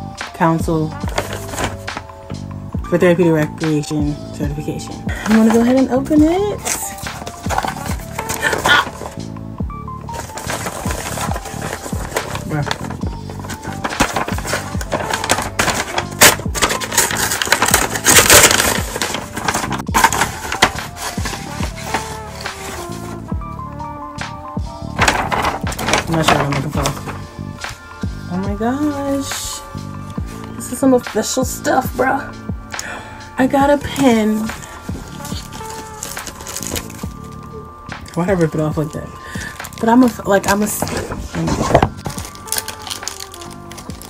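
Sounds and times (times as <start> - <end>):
background music with steady beat: 0.0 - 44.0
paper envelope tearing: 1.0 - 2.0, 6.6 - 9.3, 10.1 - 23.3, 24.8 - 27.8, 33.8 - 38.2, 39.2 - 44.0.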